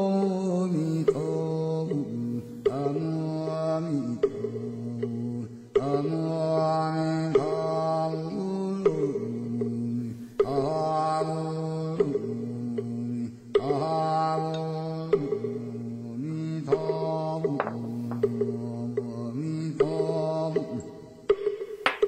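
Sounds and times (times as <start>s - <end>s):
slow chanting music: 0.0s - 22.0s.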